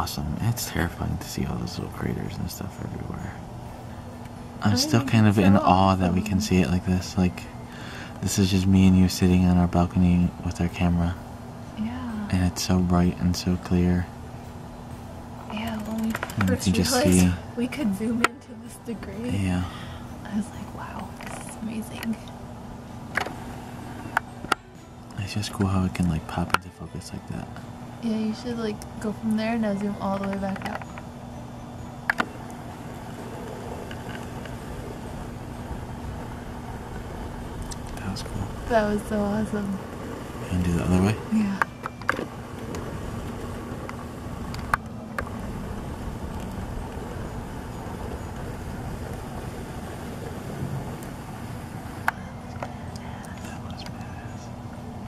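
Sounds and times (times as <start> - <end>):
background hiss: 0.0 - 30.2, 30.8 - 55.0
distant road traffic rumble: 0.0 - 55.0
low hum: 0.0 - 55.0.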